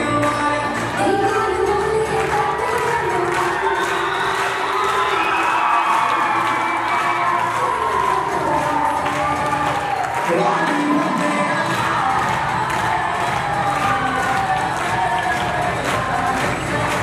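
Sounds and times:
dance music: 0.0s - 17.0s
children cheering and shouting: 2.9s - 16.2s.

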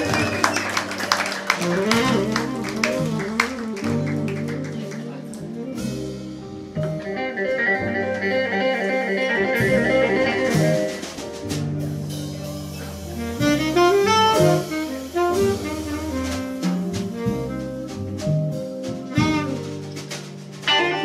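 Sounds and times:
saxophone: 0.0s - 11.4s, 13.2s - 21.0s
live band playing: 0.0s - 21.0s.

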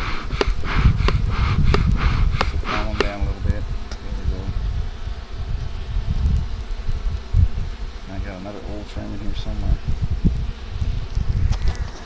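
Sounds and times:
bees buzzing: 0.0s - 12.0s.

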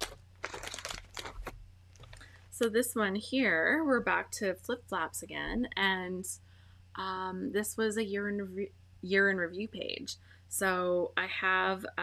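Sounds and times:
plastic page protectors crinkling: 0.0s - 2.3s.

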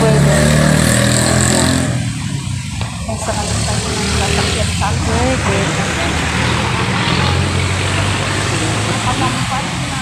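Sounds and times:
street traffic: 0.0s - 10.0s
vehicle engine droning: 0.0s - 10.0s.

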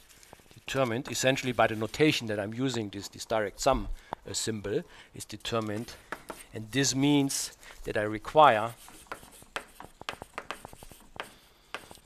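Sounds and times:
chalk writing on blackboard: 5.7s - 7.1s, 8.4s - 12.0s.

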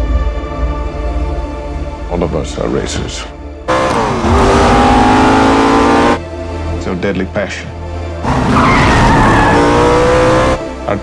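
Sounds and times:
racing car engine revving: 3.7s - 6.2s, 8.2s - 10.7s
tyres squealing: 8.3s - 10.5s.

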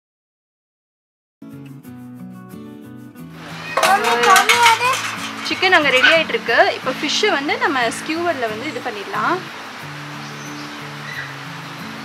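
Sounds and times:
background music: 1.4s - 12.0s.

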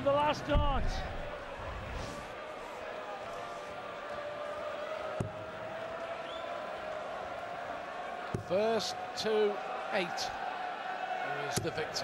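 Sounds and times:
arena crowd murmur: 0.0s - 12.0s.

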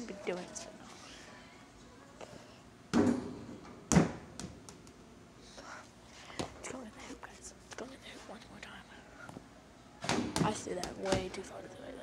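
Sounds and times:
ball knocking against hoop: 2.9s - 5.0s, 10.0s - 11.4s.

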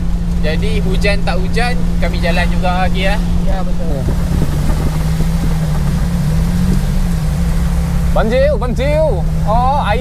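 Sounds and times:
van engine and road noise: 0.0s - 10.0s.

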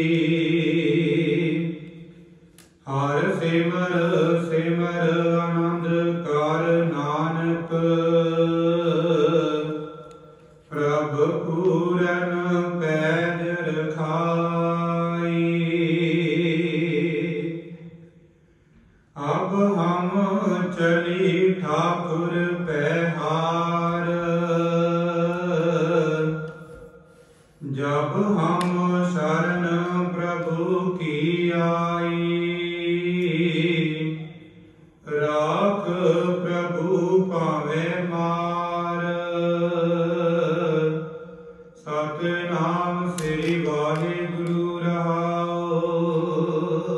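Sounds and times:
man singing hymn: 0.0s - 17.9s, 19.2s - 46.9s.

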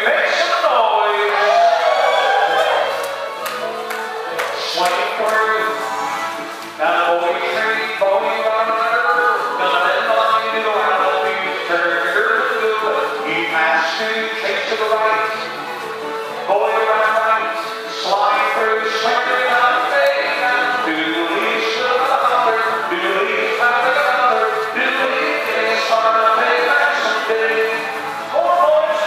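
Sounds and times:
male caller's voice: 0.0s - 1.6s, 4.6s - 5.8s, 6.8s - 15.4s
instrumental music over sound system: 0.1s - 29.0s.

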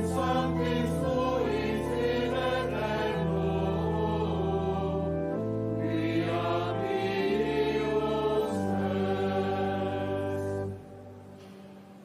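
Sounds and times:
choir singing chant: 0.0s - 10.9s.

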